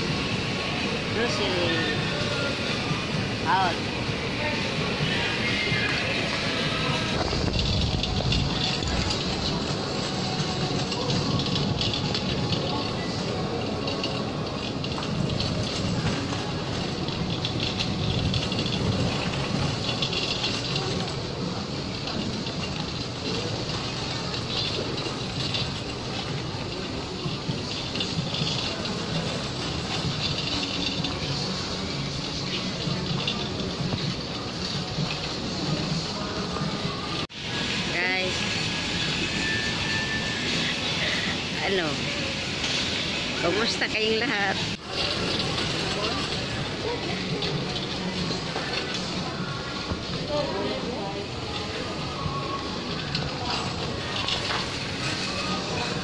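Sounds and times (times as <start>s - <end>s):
indistinct shoppers' voices: 0.0s - 56.0s
store noise: 0.0s - 56.0s.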